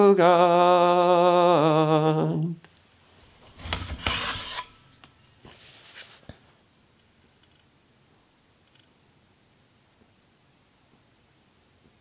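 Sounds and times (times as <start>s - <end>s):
tablet scraping against surface: 3.4s - 4.9s.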